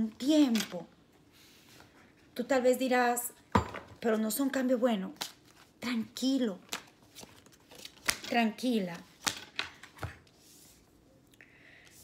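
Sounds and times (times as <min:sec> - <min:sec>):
cards being shuffled: 0:06.6 - 0:10.7.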